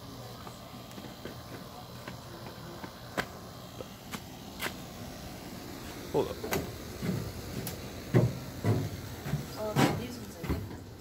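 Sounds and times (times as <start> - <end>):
steady background hiss: 0.0 - 11.0.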